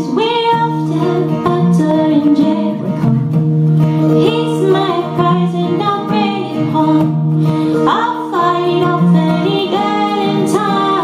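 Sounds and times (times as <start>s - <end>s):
woman singing: 0.0s - 3.1s, 4.1s - 11.0s
strummed acoustic guitar: 0.0s - 11.0s.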